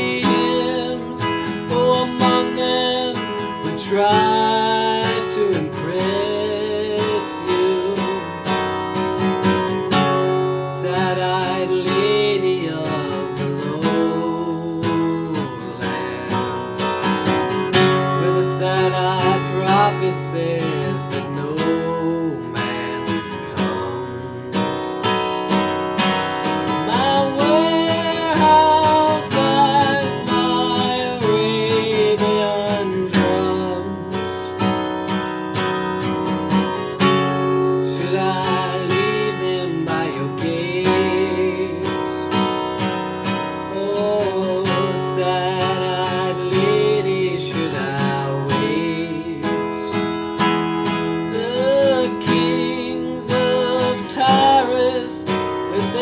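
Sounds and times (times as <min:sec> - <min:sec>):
acoustic guitar strumming: 0:00.0 - 0:56.0
man singing folk ballad: 0:00.0 - 0:56.0.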